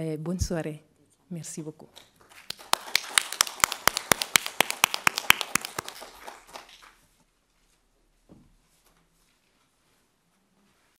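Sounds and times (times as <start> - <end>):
audience applauding: 2.4 - 6.9.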